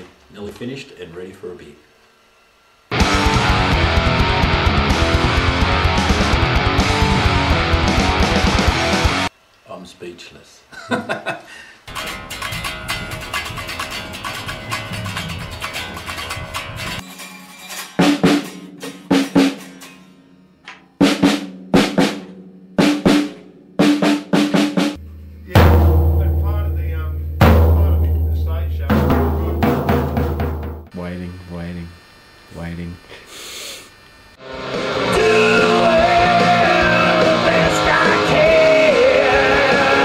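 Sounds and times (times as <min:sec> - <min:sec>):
bass guitar: 0:02.9 - 0:09.3, 0:11.9 - 0:17.0, 0:25.0 - 0:30.9, 0:34.4 - 0:40.0
distorted electric guitar: 0:02.9 - 0:09.3, 0:11.9 - 0:17.1, 0:24.8 - 0:30.2, 0:34.2 - 0:40.0
drums: 0:02.9 - 0:09.4, 0:11.8 - 0:31.0, 0:34.4 - 0:40.0.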